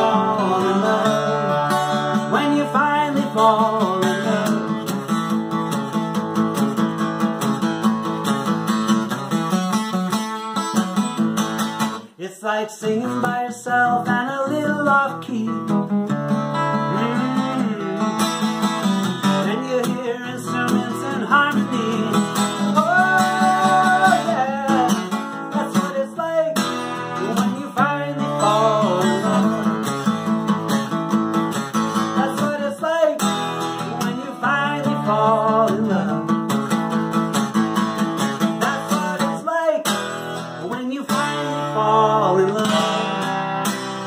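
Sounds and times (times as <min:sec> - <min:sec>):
man singing: 0:00.0 - 0:05.1, 0:12.0 - 0:30.4, 0:31.9 - 0:37.0, 0:38.2 - 0:43.6
acoustic guitar strumming chords: 0:00.0 - 0:12.2, 0:12.8 - 0:44.0.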